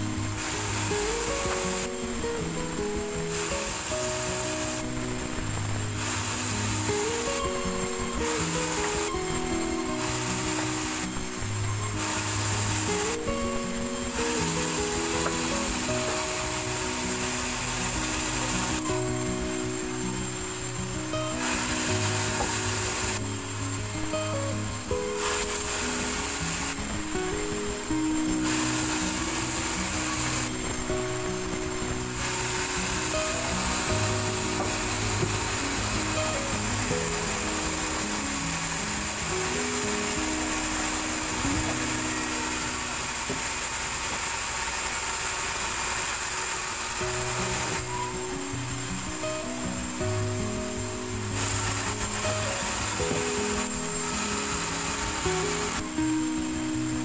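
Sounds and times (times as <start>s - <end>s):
background music with melody: 0.0s - 44.1s, 46.8s - 57.0s
band saw cutting log: 21.3s - 23.3s, 27.8s - 48.6s, 51.3s - 55.9s.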